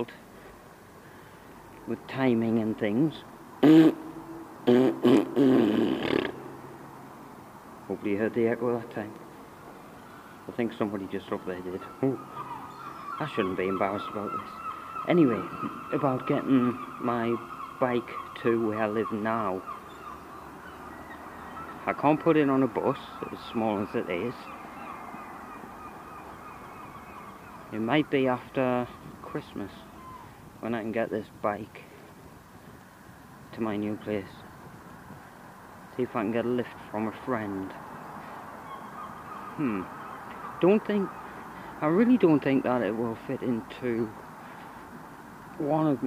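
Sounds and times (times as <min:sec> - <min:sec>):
outdoor background noise: 0:00.0 - 0:46.0.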